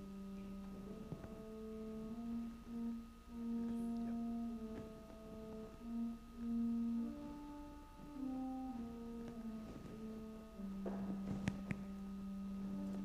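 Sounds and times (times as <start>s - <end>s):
church organ playing: 0.0s - 13.0s.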